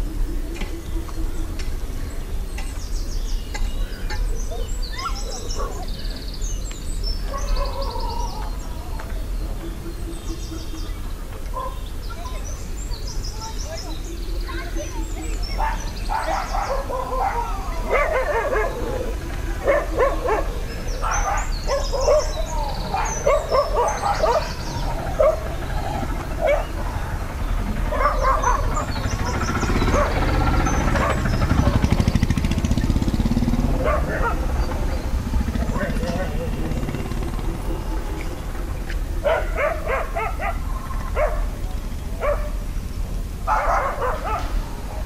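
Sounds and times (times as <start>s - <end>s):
voices: 0.0s - 45.0s
dog barking: 4.5s - 5.9s, 7.3s - 8.4s, 11.5s - 11.9s, 15.5s - 25.6s, 26.3s - 26.9s, 27.8s - 31.5s, 33.7s - 34.7s, 39.2s - 41.6s, 42.2s - 42.6s, 43.5s - 44.6s
steady low rumble: 8.5s - 45.0s.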